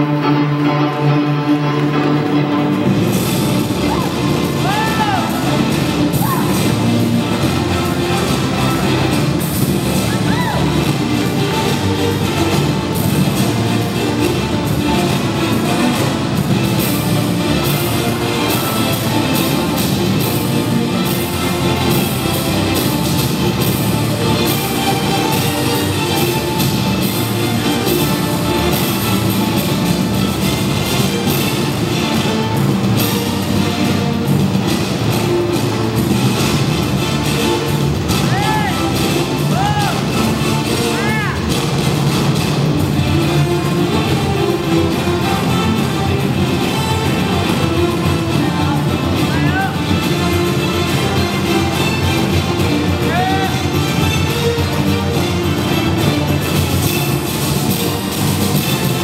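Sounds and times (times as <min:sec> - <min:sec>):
loud continuous music: 0:00.0 - 0:59.0.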